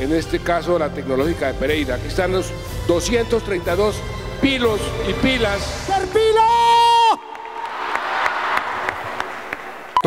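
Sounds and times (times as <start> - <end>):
crowd applauding: 6.0 - 10.0.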